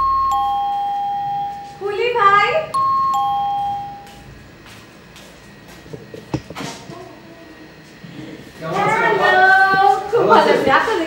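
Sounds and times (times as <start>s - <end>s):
two-tone doorbell chiming: 0.0s - 4.3s.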